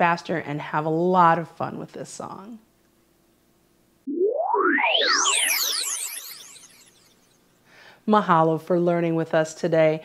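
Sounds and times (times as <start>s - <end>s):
rising synthesizer sweep: 4.1s - 7.4s.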